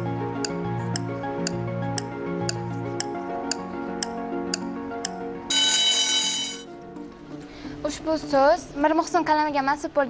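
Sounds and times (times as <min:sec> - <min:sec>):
held synth notes: 0:00.0 - 0:06.7
bright electronic ringing signal: 0:05.5 - 0:06.7.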